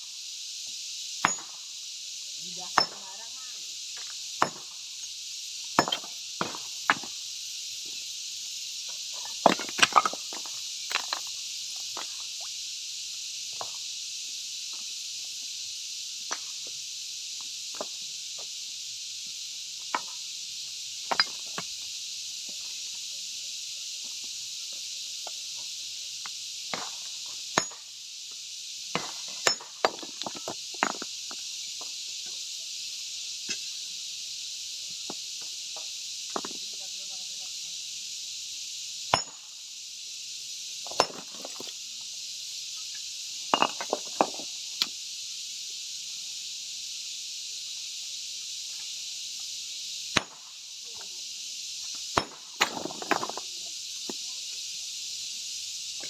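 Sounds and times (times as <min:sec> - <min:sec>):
steady high hiss: 0:00.0 - 0:56.0
stone slabs clinking: 0:01.2 - 0:01.6, 0:02.7 - 0:03.0, 0:04.4 - 0:04.7, 0:05.8 - 0:07.1, 0:09.2 - 0:11.3, 0:21.1 - 0:21.6, 0:27.6 - 0:27.8, 0:29.0 - 0:31.1, 0:39.1 - 0:39.5, 0:40.8 - 0:41.7, 0:43.5 - 0:44.5, 0:50.2 - 0:50.4, 0:52.2 - 0:53.5.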